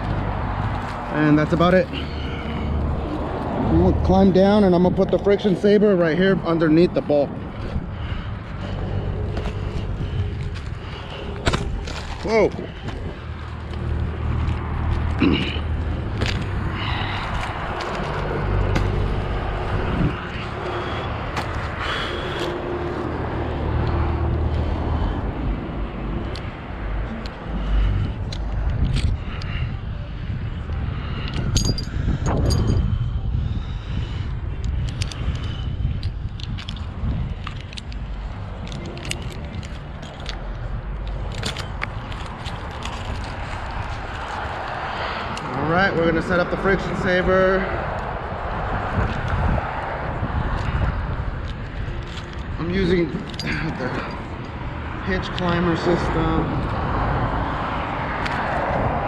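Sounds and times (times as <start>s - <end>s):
steady low rumble: 0.0s - 59.0s
metal climbing hardware clinking: 31.3s - 32.8s, 38.6s - 43.3s, 51.4s - 54.3s.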